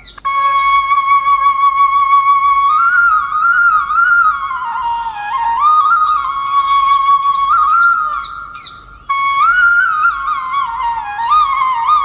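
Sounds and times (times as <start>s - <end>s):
solo flute melody: 0.1s - 12.0s.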